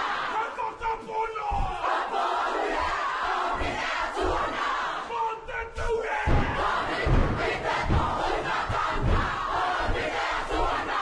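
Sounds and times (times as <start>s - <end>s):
group shouting and chanting: 0.0s - 11.0s
stamping feet thumps: 6.2s - 10.8s.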